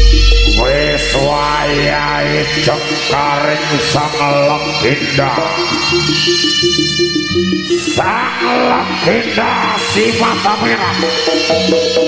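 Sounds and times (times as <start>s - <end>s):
sliding melody with reverb: 0.0s - 12.0s
steady held tones: 0.0s - 12.0s.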